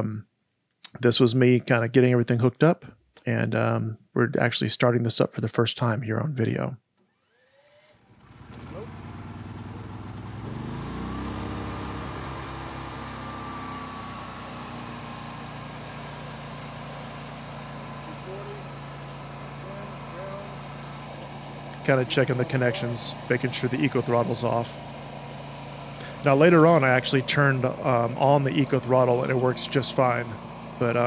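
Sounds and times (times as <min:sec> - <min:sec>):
generator engine starting and running: 0:07.0 - 0:31.0.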